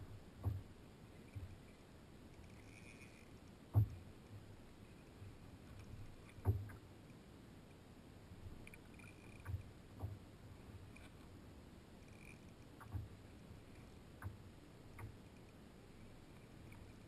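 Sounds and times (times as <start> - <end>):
faint water background: 0.0 - 17.0.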